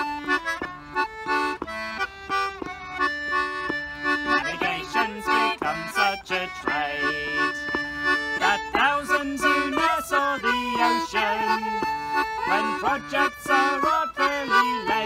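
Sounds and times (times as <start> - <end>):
concertina chords: 0.0 - 15.0
fiddle melody: 0.0 - 15.0.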